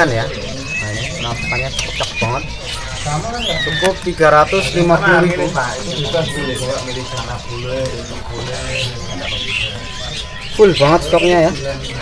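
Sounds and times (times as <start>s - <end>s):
faint music: 0.0s - 12.0s
songbirds chirping: 0.0s - 12.0s.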